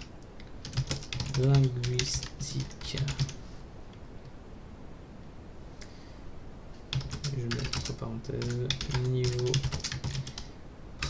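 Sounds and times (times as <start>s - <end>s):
computer keyboard keystrokes: 0.0s - 3.4s, 6.9s - 10.5s
steady background noise: 0.0s - 11.0s.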